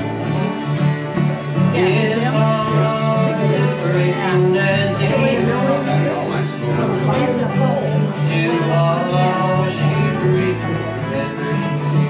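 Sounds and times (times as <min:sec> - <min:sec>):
acoustic guitars strumming country tune: 0:00.0 - 0:12.0.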